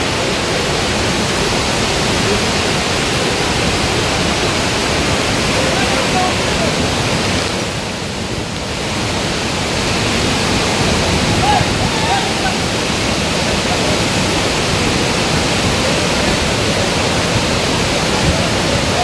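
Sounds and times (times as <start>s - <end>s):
waterfall rushing over rocks: 0.0s - 19.0s.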